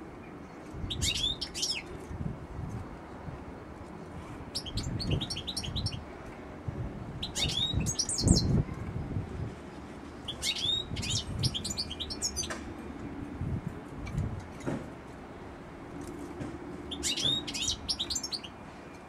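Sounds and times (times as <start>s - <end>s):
goldfinch twittering chirps: 4.6s - 6.0s, 7.2s - 8.5s, 10.3s - 12.5s, 16.9s - 18.5s.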